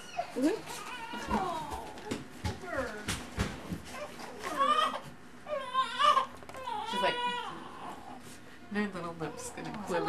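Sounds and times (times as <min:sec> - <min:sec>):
baby whimpering cries: 0:00.0 - 0:03.0, 0:04.0 - 0:08.2.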